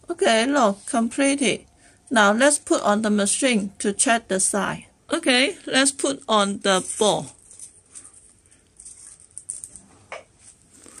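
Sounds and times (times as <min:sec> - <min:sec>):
faint rustling from handling: 0:06.6 - 0:11.0.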